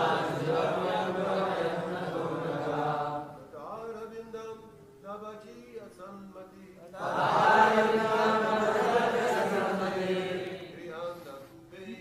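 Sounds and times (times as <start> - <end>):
congregation chanting in unison: 0.0 - 3.5, 6.9 - 11.4.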